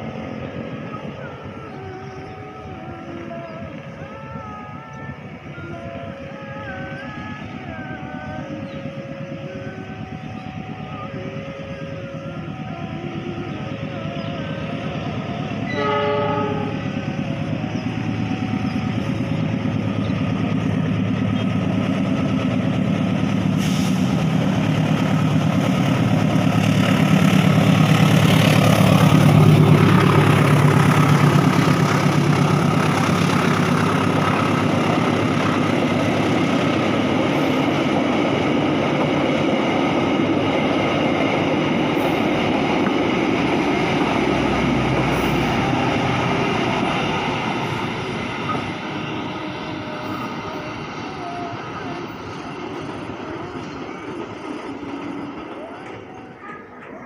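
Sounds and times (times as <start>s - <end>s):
diesel locomotive engine: 0.0s - 57.0s
train wheels rumbling: 0.0s - 57.0s
train horn blast: 15.4s - 19.1s, 44.4s - 52.1s.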